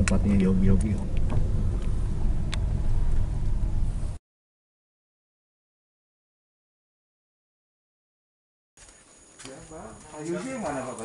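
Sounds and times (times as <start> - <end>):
car engine and tyres rumbling: 0.0 - 4.2.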